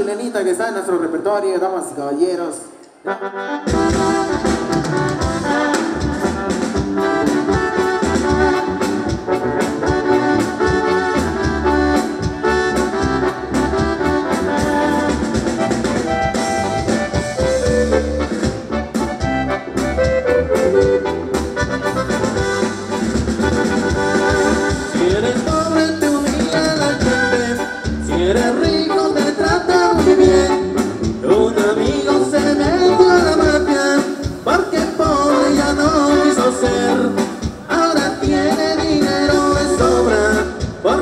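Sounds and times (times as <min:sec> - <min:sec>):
live band playing: 0:02.3 - 0:41.0.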